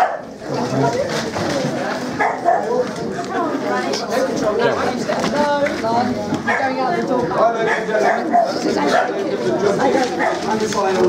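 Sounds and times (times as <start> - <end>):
dog barking and yipping: 0.0 - 0.3, 2.2 - 2.7, 7.6 - 9.2, 10.2 - 10.5
people chattering: 0.0 - 11.0.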